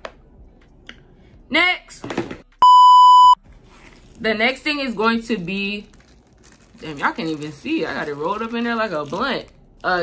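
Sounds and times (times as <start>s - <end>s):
censor bleep: 2.6s - 3.4s.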